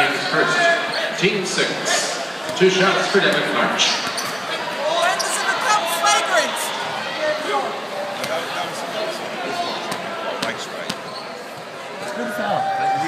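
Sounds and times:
crowd chatter: 0.0 - 13.0.

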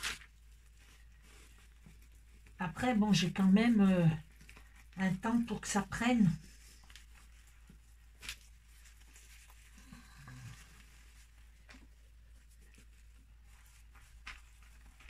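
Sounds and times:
gloved hands handling fabric: 0.0 - 15.0.

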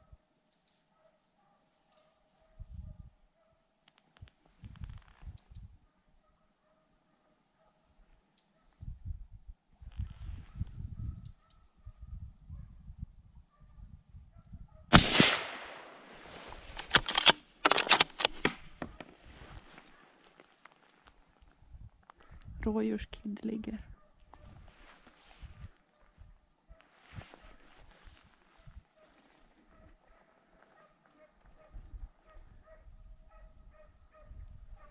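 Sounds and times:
suppressed rifle shot: 14.9 - 19.0
rustling of rifle being handled: 15.4 - 22.3, 24.3 - 26.0, 26.8 - 31.6
sharp clicks and knocks: 16.6 - 19.1.

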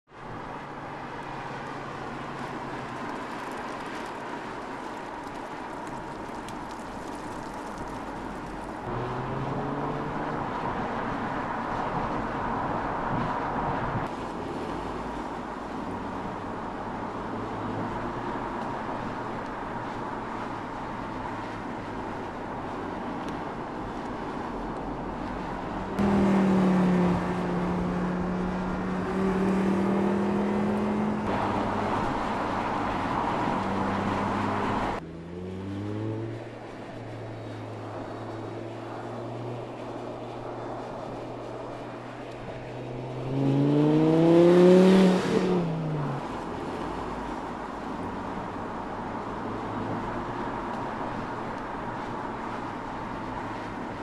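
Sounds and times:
car engine driving past: 8.9 - 10.4, 26.0 - 32.6, 33.4 - 36.6, 42.8 - 46.3.

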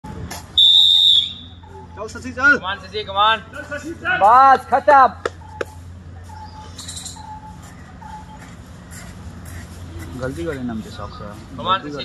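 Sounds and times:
whistle blast: 0.6 - 1.9.

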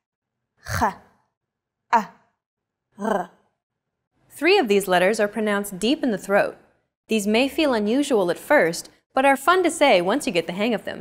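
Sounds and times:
woman pronouncing throat sounds: 0.6 - 1.2, 1.9 - 2.4, 3.0 - 3.5.

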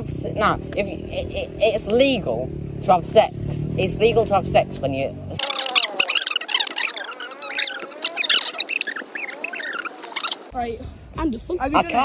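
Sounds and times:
sped-up squeaky voices chattering: 5.3 - 10.5.

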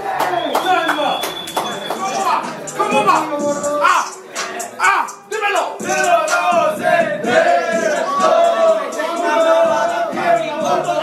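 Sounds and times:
young men calling out and talking: 0.0 - 11.0
sharp claps: 0.1 - 2.2.

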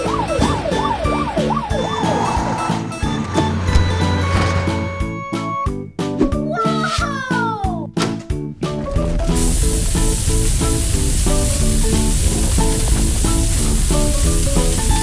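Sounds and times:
upbeat music: 0.0 - 15.0
fire hose spraying water: 9.2 - 15.0.

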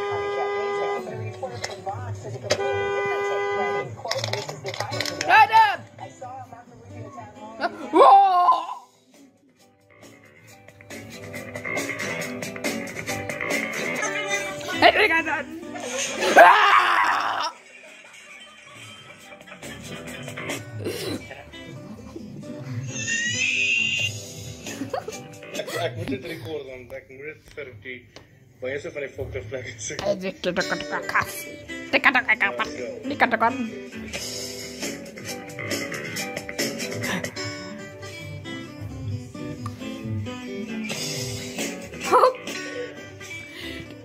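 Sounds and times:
music: 0.0 - 44.0
loud voice-like cries: 7.8 - 9.0, 16.2 - 17.6, 22.8 - 24.1
rising high squeal: 23.0 - 24.2.

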